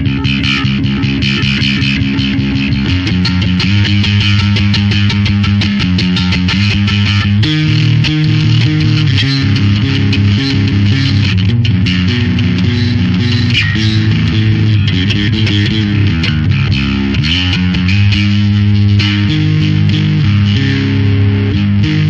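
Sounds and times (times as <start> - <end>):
distorted electric bass guitar: 0.0 - 22.0.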